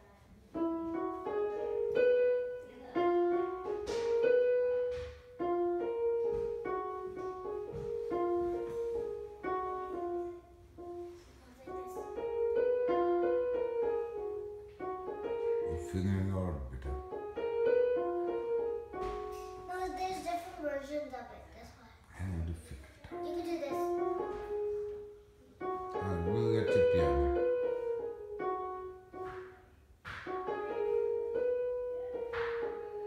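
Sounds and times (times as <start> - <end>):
electronic keyboard piano melody: 0.6 - 19.7, 23.2 - 33.0.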